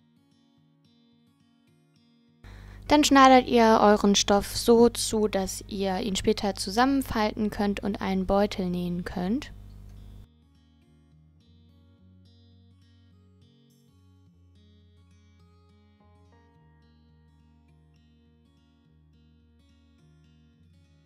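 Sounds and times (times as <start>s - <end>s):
plucked acoustic guitar music: 0.0s - 21.0s.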